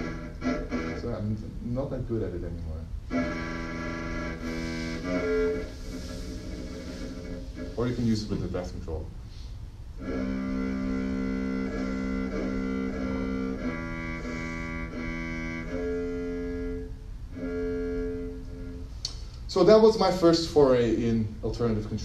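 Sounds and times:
synthesized cello notes: 0:00.0 - 0:09.1, 0:09.8 - 0:21.1.

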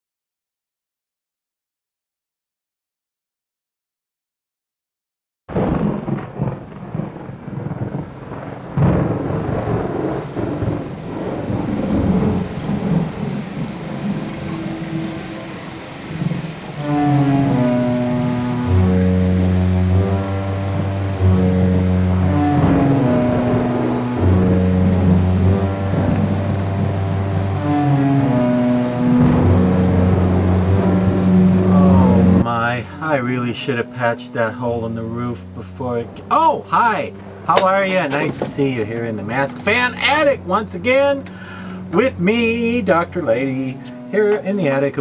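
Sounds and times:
thunder: 0:05.5 - 0:33.2
rain: 0:05.5 - 0:45.0
slow music of low notes: 0:05.6 - 0:45.0.

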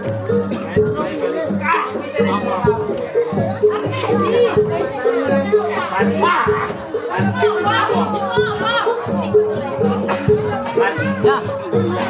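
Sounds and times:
gamelan music: 0:00.0 - 0:12.0
people's voices and shouts: 0:00.0 - 0:12.0.

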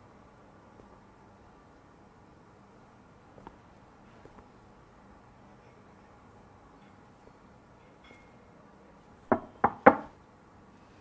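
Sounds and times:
knuckles knocking on wooden door: 0:09.3 - 0:10.1.

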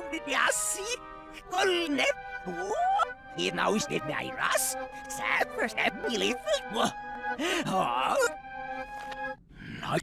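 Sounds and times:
held background music notes: 0:00.0 - 0:09.4.

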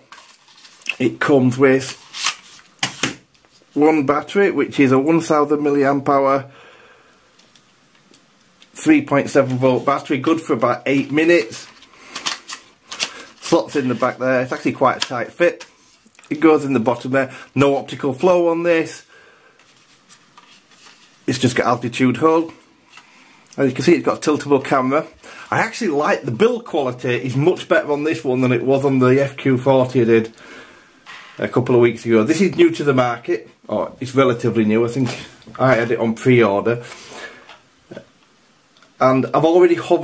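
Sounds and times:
hands handling plastic drone: 0:11.0 - 0:14.1.

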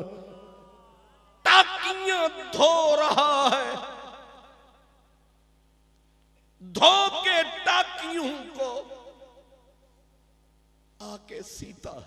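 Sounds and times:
faint electrical hum: 0:00.0 - 0:12.0
man speaking over public address: 0:01.5 - 0:03.8, 0:06.7 - 0:09.0, 0:11.0 - 0:12.0.

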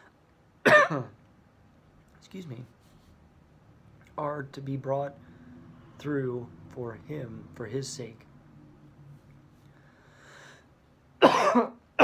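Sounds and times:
man coughing: 0:00.6 - 0:01.2, 0:11.2 - 0:12.0
short breath in: 0:09.7 - 0:10.7.

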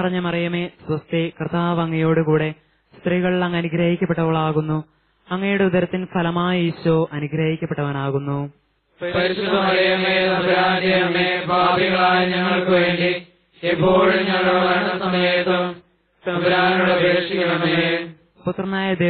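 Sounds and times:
person chanting prayer: 0:09.0 - 0:18.2.

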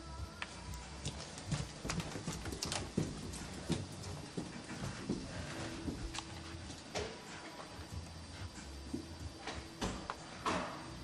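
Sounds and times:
footsteps on hard floor: 0:01.0 - 0:07.7.

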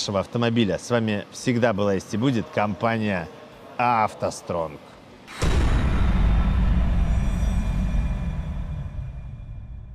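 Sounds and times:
deep low rumble: 0:05.4 - 0:09.9
faint high ringing tones: 0:05.7 - 0:09.9.

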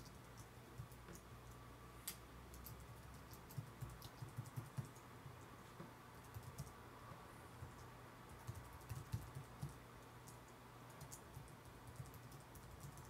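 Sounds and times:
faint keyboard typing: 0:00.0 - 0:06.8, 0:07.6 - 0:13.0.

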